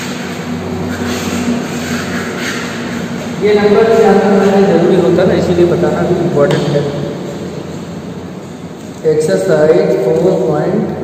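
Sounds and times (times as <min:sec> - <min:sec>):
steady rushing noise: 0:00.0 - 0:11.0
person speaking: 0:02.5 - 0:07.6, 0:08.8 - 0:11.0.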